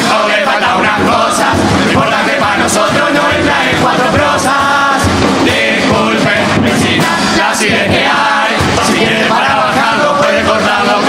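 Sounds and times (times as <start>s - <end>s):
bass drum thumps: 0.0s - 11.0s
chorus singing: 0.0s - 11.0s.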